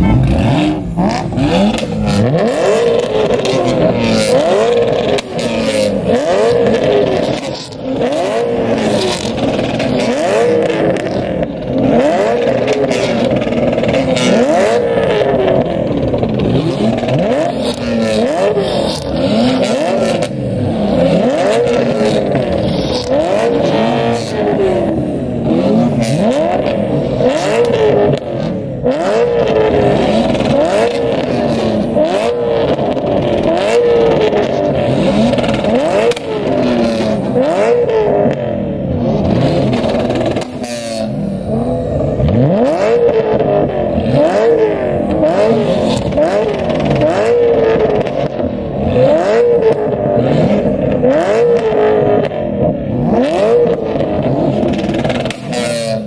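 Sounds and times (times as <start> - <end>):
car engines revving: 0.0 - 56.0.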